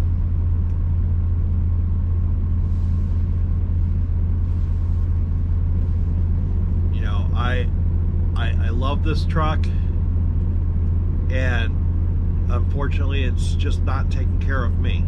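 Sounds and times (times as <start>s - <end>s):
diesel truck engine idling: 0.0s - 15.0s.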